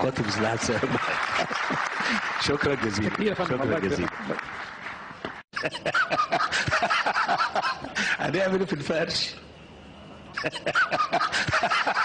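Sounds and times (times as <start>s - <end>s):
audience applause: 0.0s - 5.4s.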